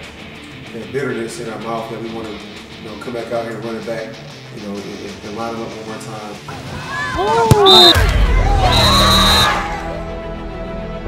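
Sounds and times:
background music sustained tones: 0.0s - 11.0s
people shouting: 6.6s - 10.0s
referee's whistle blast: 7.5s - 9.8s.

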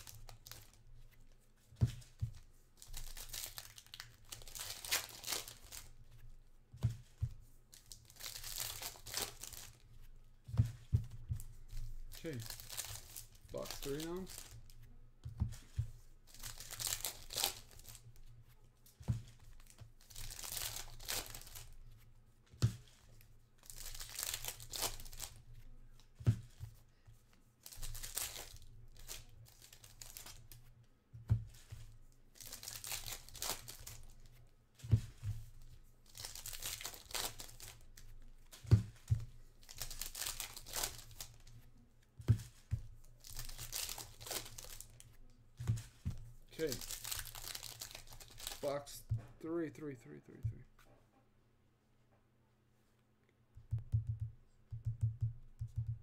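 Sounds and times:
card pack wrappers crinkling and tearing: 0.0s - 0.8s, 2.8s - 5.9s, 7.7s - 9.8s, 12.1s - 14.6s, 16.3s - 18.1s, 19.6s - 21.7s, 23.6s - 25.4s, 27.6s - 30.4s, 32.4s - 34.2s, 36.1s - 38.1s, 39.6s - 41.6s, 43.2s - 45.0s, 46.5s - 49.0s.

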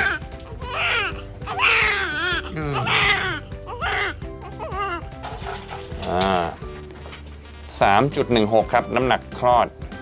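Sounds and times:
newborn baby crying: 0.0s - 5.2s
soft background music: 0.0s - 10.0s.

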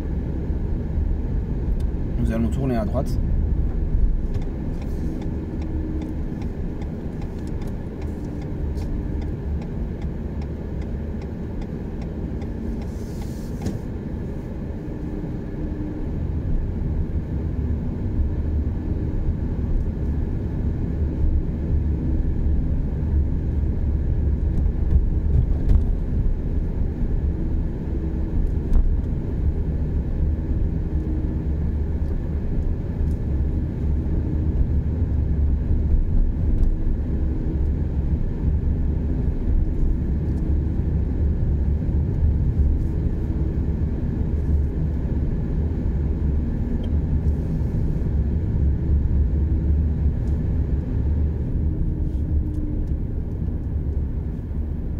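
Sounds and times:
car engine and tyre rumble: 0.0s - 54.9s.

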